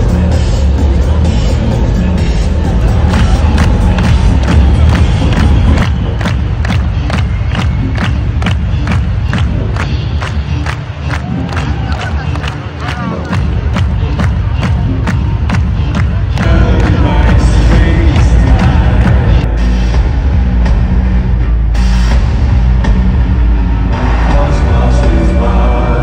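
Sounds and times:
loud amplified music: 0.0s - 26.0s
crowd cheering: 2.4s - 19.5s, 23.0s - 26.0s.

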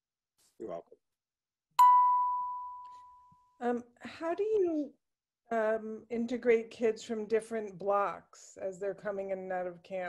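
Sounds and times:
bell-like chime: 1.8s - 3.3s.

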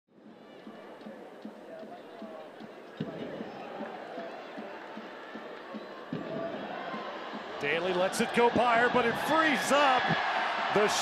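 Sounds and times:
stadium crowd voices: 0.2s - 11.0s.

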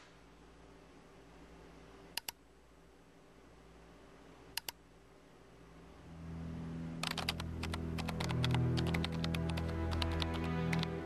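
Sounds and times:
keyboard typing clicks: 2.1s - 2.4s, 4.6s - 4.8s, 7.0s - 11.0s
music with low sustained tones: 5.9s - 11.0s.

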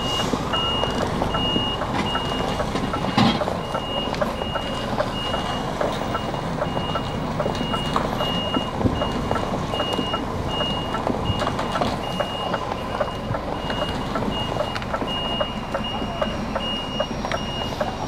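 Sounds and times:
diesel engine running: 0.0s - 18.0s
reversing alarm beeping: 0.0s - 18.0s.

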